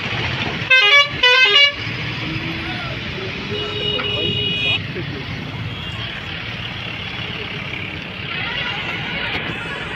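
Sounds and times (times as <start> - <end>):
heavy diesel engines rumbling: 0.0 - 9.9.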